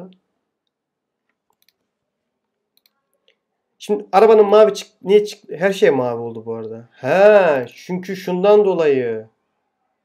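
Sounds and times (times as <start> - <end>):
faint computer mouse clicks: 0.6 - 1.9, 2.8 - 3.4.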